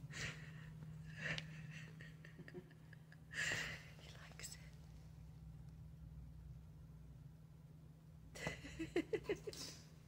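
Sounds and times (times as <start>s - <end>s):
steady low hum: 0.0s - 10.0s
soft whisper: 3.6s - 5.0s.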